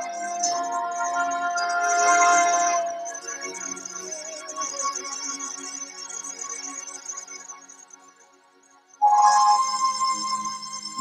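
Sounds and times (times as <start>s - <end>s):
worship music on keyboard: 0.0s - 6.4s, 9.0s - 11.0s.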